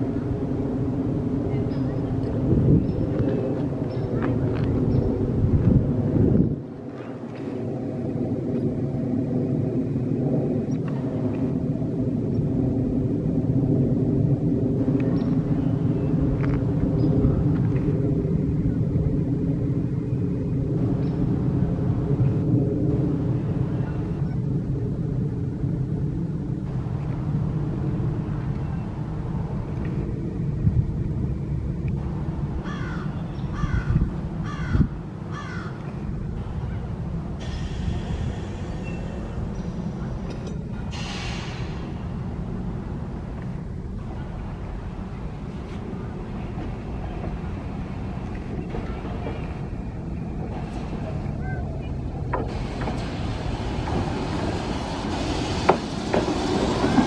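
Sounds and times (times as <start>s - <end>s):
low rumble with hum: 0.0s - 57.0s
crow cawing: 32.6s - 35.8s.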